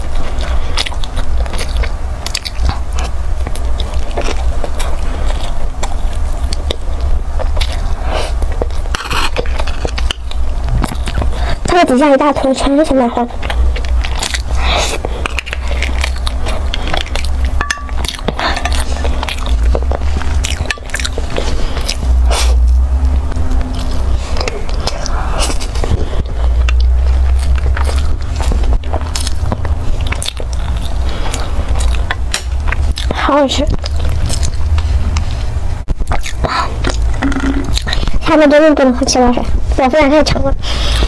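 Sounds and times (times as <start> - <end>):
chewing and wet mouth sounds: 0.0 - 41.0
steady low hum: 0.0 - 41.0
person gulping a drink: 36.3 - 38.0.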